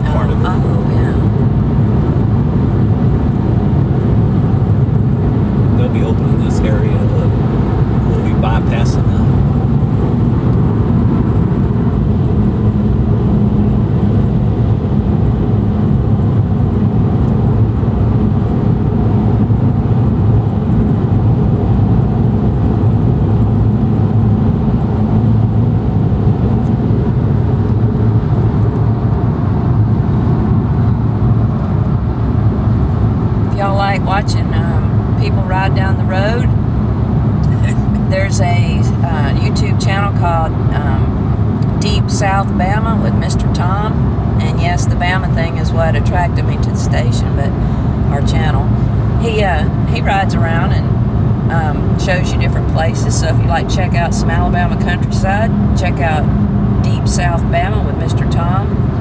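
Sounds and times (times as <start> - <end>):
car cabin road and engine rumble: 0.0 - 59.0.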